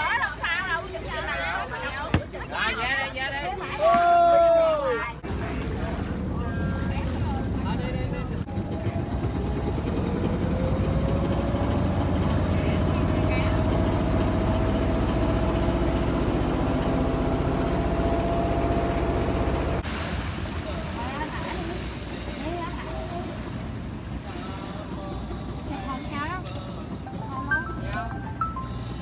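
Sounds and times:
voices: 0.0 - 17.1, 20.4 - 29.0
motor boat engine: 0.0 - 29.0.

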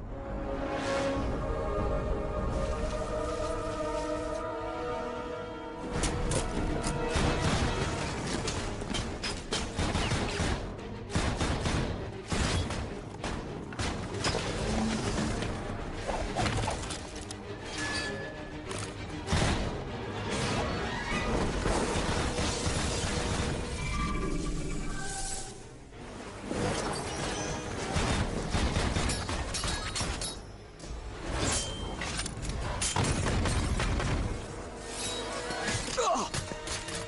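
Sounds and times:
film music score: 0.0 - 37.0.

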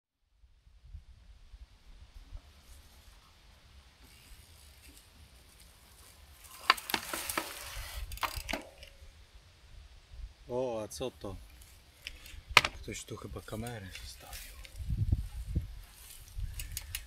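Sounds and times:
wind rumble on microphone: 0.6 - 2.9, 12.3 - 17.0
bike tyres on dirt: 2.1 - 9.5, 11.2 - 17.0
clicks and knocks from bike: 6.4 - 9.0, 12.0 - 12.8, 16.4 - 17.0.

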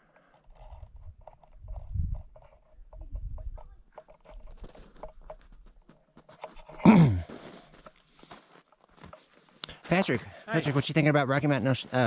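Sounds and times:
wind buffeting microphone: 0.8 - 3.8
footsteps crunching on snow: 4.4 - 11.0.

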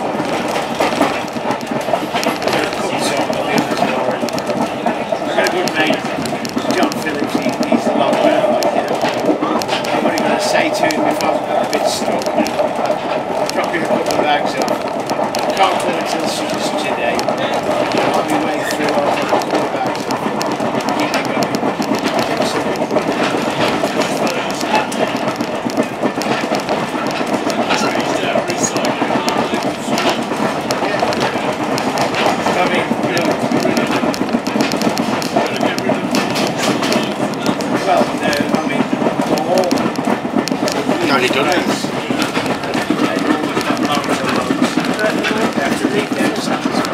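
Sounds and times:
train clicks and knocks: 0.0 - 46.9
train wheels rumbling on rail: 0.0 - 46.9.

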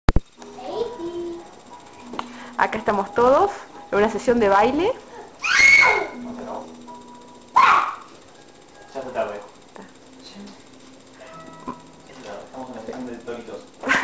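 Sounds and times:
faint music: 0.2 - 14.0
loud yell: 5.4 - 6.1.

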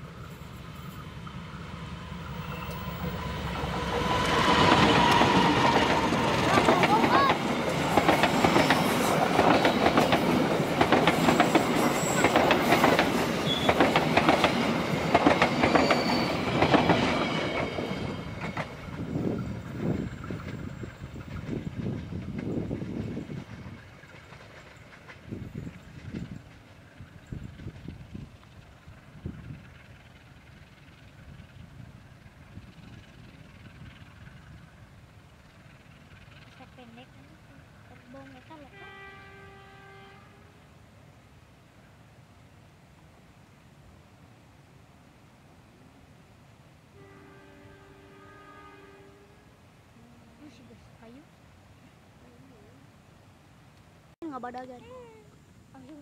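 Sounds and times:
train wheel noise: 0.0 - 40.0
diesel locomotive engine: 0.0 - 56.0
wheels clacking over rail joints: 1.0 - 38.5.

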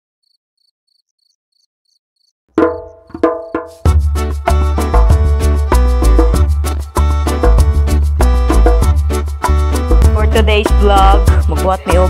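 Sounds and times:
faint insect chirping: 0.2 - 3.8.

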